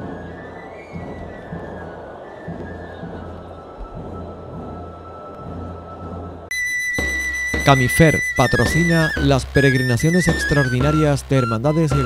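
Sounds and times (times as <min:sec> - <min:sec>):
crowd murmur: 0:00.0 - 0:06.5
high flute-like note: 0:06.5 - 0:12.0.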